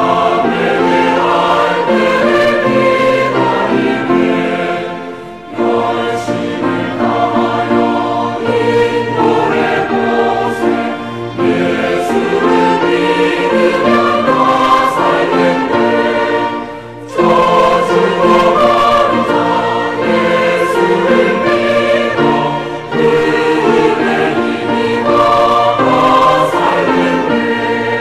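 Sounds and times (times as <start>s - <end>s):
church choir singing a hymn: 0.0s - 28.0s.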